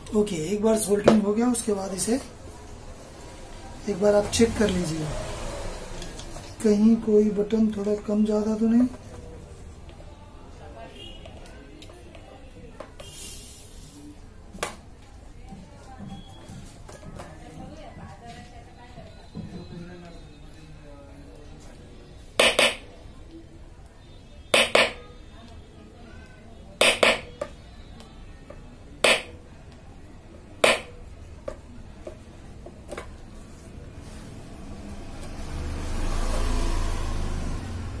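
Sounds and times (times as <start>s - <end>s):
tool knocking on hard surface: 22.4s - 22.8s, 24.6s - 25.0s, 26.8s - 27.3s.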